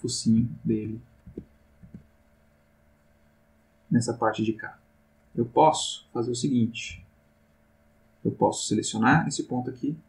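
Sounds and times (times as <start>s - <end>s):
faint electrical hum: 0.0s - 10.0s
dull low thumps: 1.2s - 2.1s.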